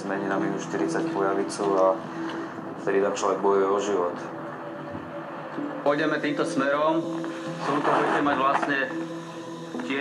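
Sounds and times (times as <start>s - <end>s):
man narrating: 0.0s - 2.0s, 2.8s - 4.3s, 5.8s - 9.0s, 9.7s - 10.0s
background music with held tones: 0.0s - 10.0s.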